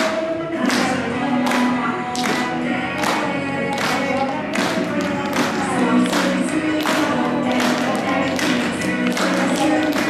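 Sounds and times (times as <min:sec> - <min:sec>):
backing music with tapping beat: 0:00.0 - 0:10.0.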